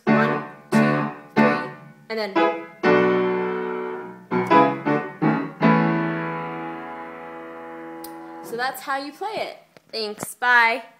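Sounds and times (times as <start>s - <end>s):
upright piano chords: 0.0s - 8.8s.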